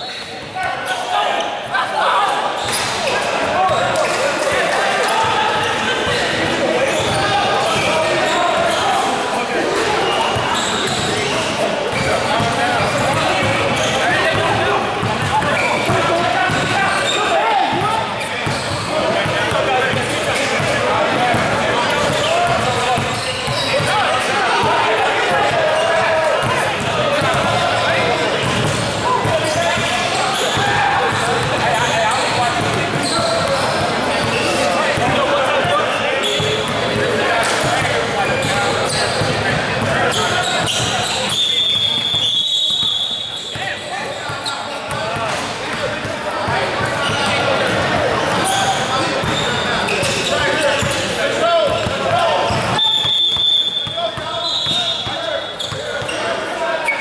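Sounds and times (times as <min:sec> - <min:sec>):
many voices talking and calling: 0:00.0 - 0:57.0.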